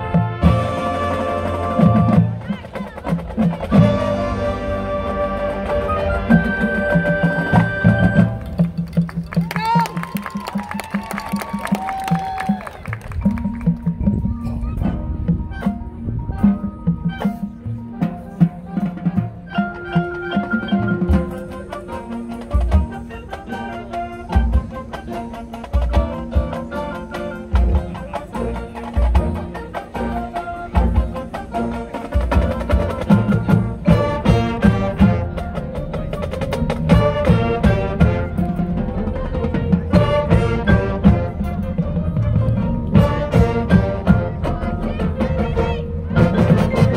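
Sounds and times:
marching band playing: 0:00.0 - 0:46.9.

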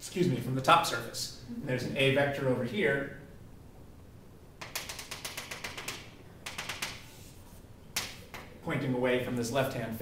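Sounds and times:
chalk ticking on chalkboard: 0:04.6 - 0:07.4.

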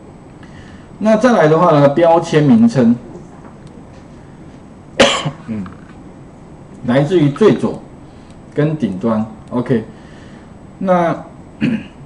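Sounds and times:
man coughing: 0:05.0 - 0:05.6, 0:11.6 - 0:12.0
short throat sound: 0:11.6 - 0:12.0.

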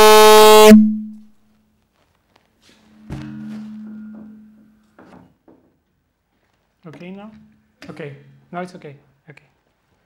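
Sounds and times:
loudspeaker electrical buzz: 0:00.0 - 0:01.2.

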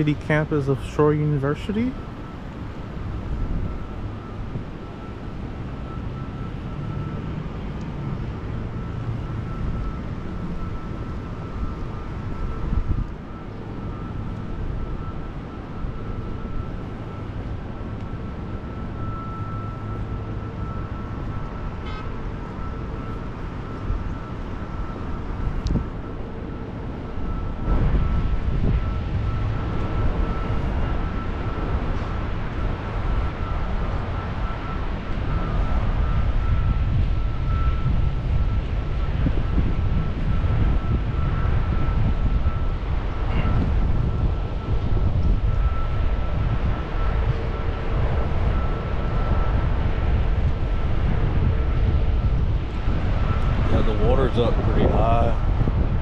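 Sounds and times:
wind rumbling on microphone: 0:01.7 - 0:56.0.

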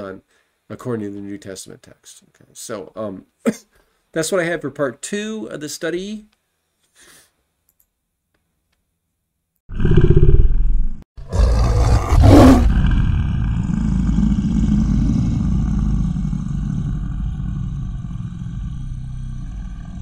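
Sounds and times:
low rumble: 0:12.6 - 0:20.0.

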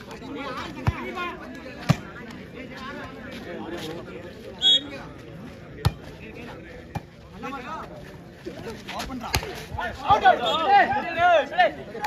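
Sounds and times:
crowd chatter: 0:00.0 - 0:12.0
referee's whistle: 0:04.6 - 0:05.0.

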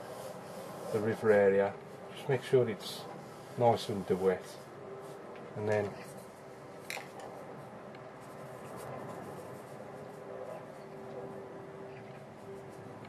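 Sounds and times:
paintbrush scratching and brushing: 0:00.0 - 0:05.3, 0:05.9 - 0:13.0
steady low hum: 0:00.0 - 0:13.0.

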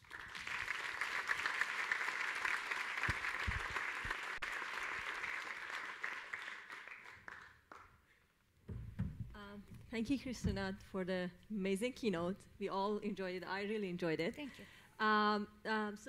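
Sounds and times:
audience applauding: 0:00.0 - 0:07.9.

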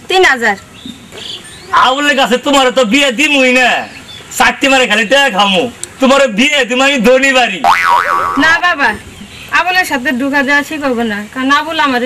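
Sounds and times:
cartoon boing sound effect: 0:07.6 - 0:08.6.

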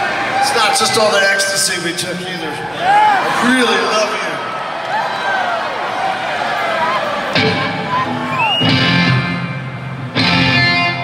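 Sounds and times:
crowd voices and shouts: 0:00.0 - 0:11.0
electric guitar and bass chords: 0:07.3 - 0:11.0.

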